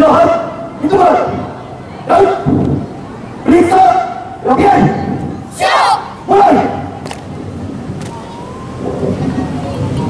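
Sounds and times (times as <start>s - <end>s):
group shouting drill calls: 3.6s - 7.0s.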